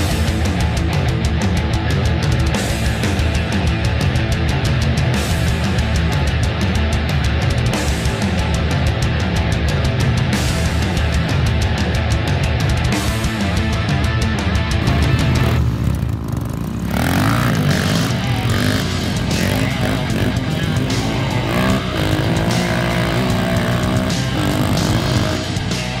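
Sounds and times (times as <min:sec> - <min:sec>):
motorcycle engine revving: 0:00.0 - 0:26.0
rock music: 0:00.0 - 0:26.0.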